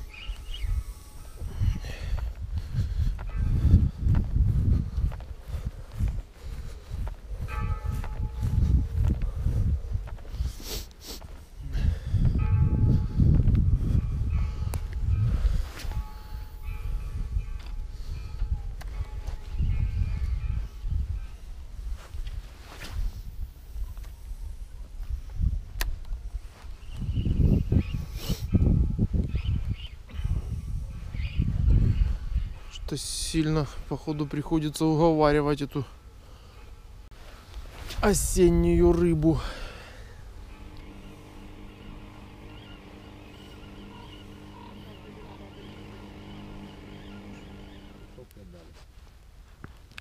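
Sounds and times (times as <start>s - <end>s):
faint steady ringing tones: 0.0s - 2.2s, 12.4s - 21.7s, 38.8s - 48.2s
footsteps on grassy path: 0.0s - 17.7s, 18.3s - 34.1s, 37.1s - 50.0s
wind buffeting microphone: 0.0s - 34.6s, 36.0s - 48.3s.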